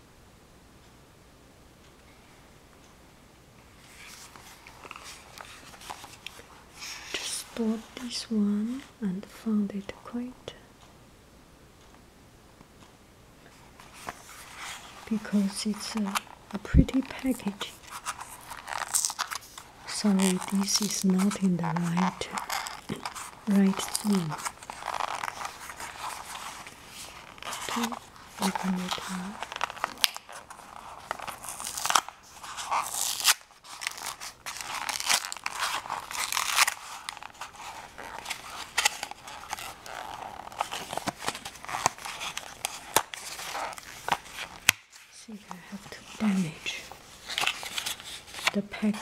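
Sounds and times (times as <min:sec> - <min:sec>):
cardboard box rustling: 0:13.8 - 0:49.0
packaging crinkling: 0:13.9 - 0:49.0.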